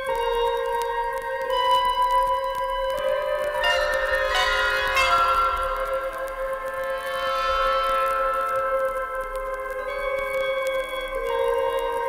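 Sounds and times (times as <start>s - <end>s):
orchestral pop music: 3.6s - 6.5s
bright bell-like notes: 3.6s - 8.6s.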